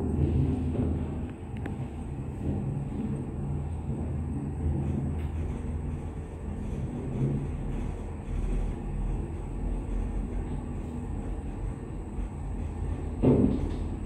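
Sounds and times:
elevator low rumble and hum: 0:00.0 - 0:14.0.

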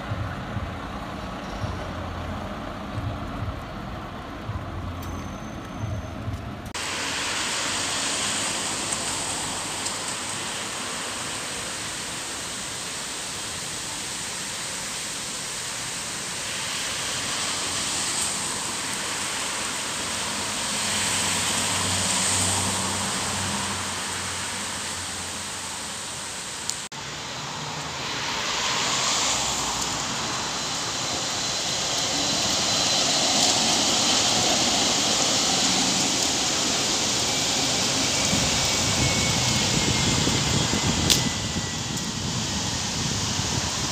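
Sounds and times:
buses passing: 0:00.0 - 0:43.9
city street traffic: 0:00.0 - 0:43.9.

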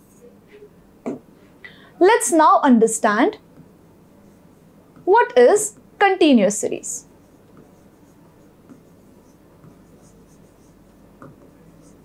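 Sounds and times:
pen scratching on a screen: 0:07.0 - 0:12.0.

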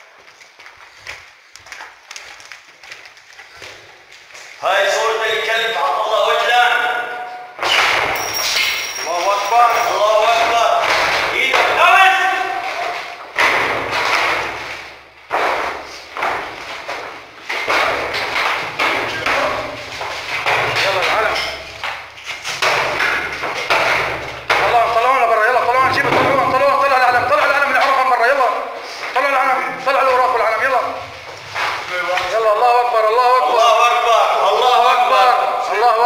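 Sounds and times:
heavy thuds and slams: 0:07.6 - 0:08.3, 0:12.6 - 0:21.2, 0:22.3 - 0:25.0, 0:25.6 - 0:27.6.

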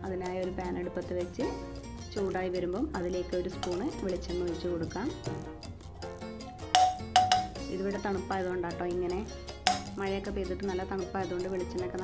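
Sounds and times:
background music: 0:00.0 - 0:12.0
metal spoon clinking on pan: 0:03.6 - 0:03.9, 0:06.7 - 0:07.7, 0:09.6 - 0:10.0.

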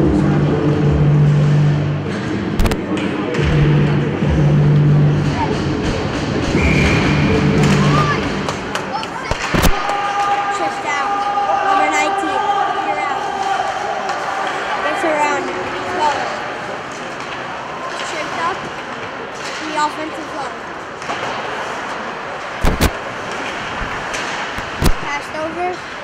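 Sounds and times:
music over arena speakers: 0:00.0 - 0:08.7
ice rink noise: 0:00.0 - 0:26.0
sharp knock: 0:22.6 - 0:23.0.

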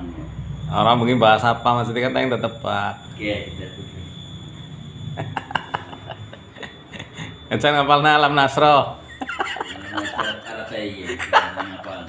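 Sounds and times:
people chuckling: 0:05.2 - 0:07.4, 0:09.0 - 0:12.0.

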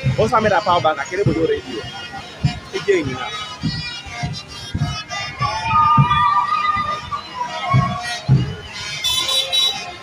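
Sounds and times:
music with thumping beat: 0:00.0 - 0:09.9
street crowd noise: 0:00.0 - 0:10.0
vehicle horns tooting: 0:00.0 - 0:10.0.

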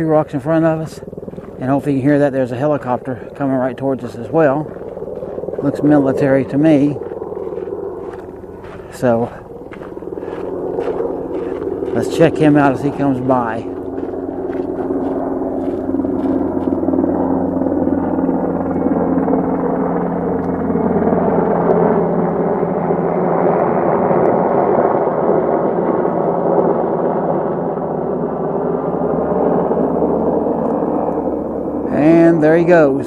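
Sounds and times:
helicopter rotors beating: 0:00.0 - 0:33.0.

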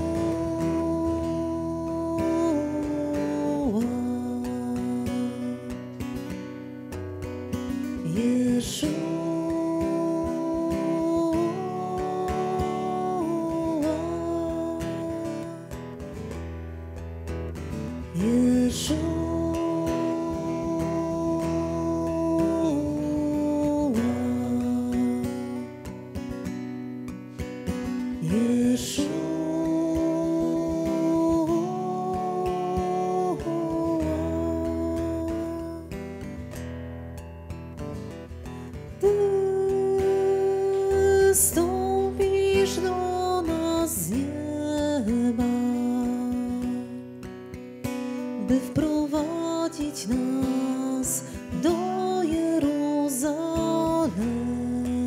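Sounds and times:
person singing: 0:00.0 - 0:06.4, 0:07.6 - 0:16.4, 0:17.6 - 0:26.4, 0:27.7 - 0:36.6, 0:38.4 - 0:47.3, 0:48.0 - 0:55.0
strummed acoustic guitar: 0:00.0 - 0:55.0.

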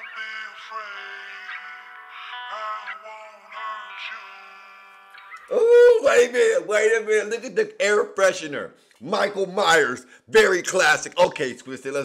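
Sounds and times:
processed vocal line: 0:00.0 - 0:06.5
man shouting loudly: 0:05.5 - 0:07.4.

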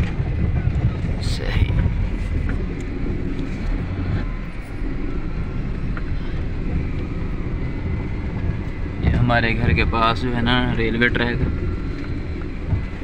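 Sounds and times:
car engine rumble: 0:00.0 - 0:13.0
tyre noise on road: 0:00.0 - 0:13.0.

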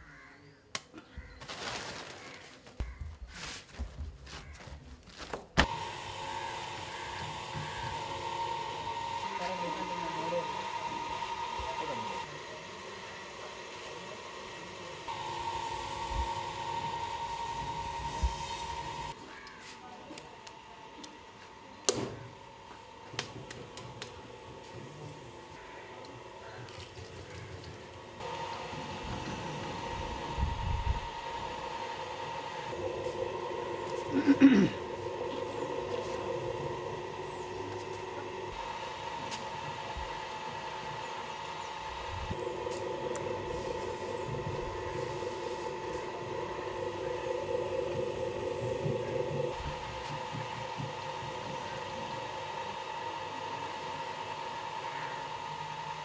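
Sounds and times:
motor humming: 0:05.6 - 0:56.0.

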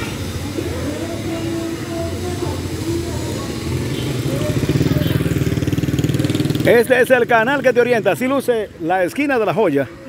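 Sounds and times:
small motorcycle engine approaching: 0:00.4 - 0:08.0.

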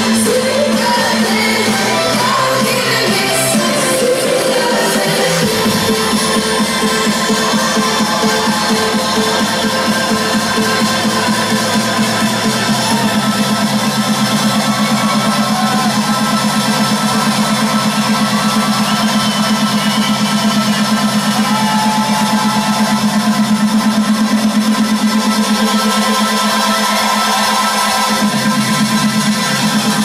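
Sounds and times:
loud electronic dance music: 0:00.0 - 0:30.0.

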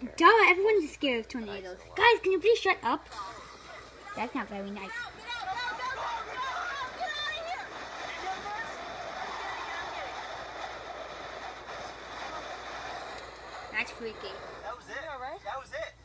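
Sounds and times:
storm wind and rain roaring: 0:05.2 - 0:14.7.

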